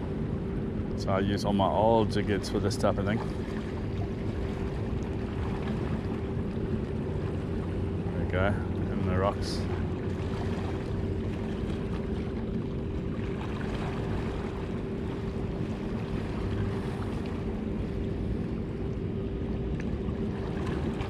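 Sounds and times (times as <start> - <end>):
ship engines droning: 0.0 - 21.0.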